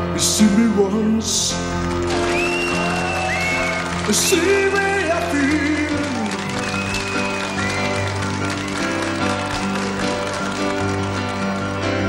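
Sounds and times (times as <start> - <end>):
person singing: 3.9 - 6.6.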